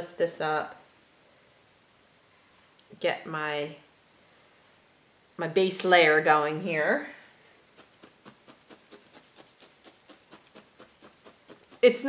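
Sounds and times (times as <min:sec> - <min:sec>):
felting needle stabbing into wool: 0:07.7 - 0:11.9.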